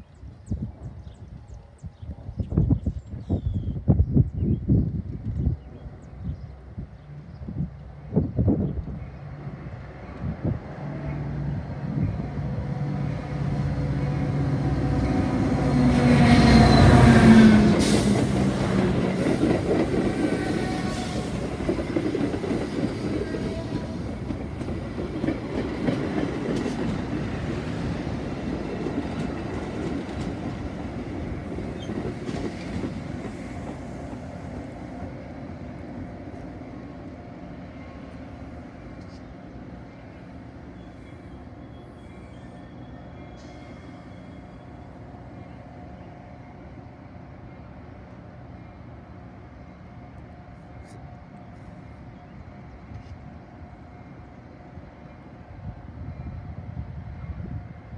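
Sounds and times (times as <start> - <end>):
train cars rumbling by: 0.0 - 57.9
diesel locomotive engine passing: 4.1 - 57.9.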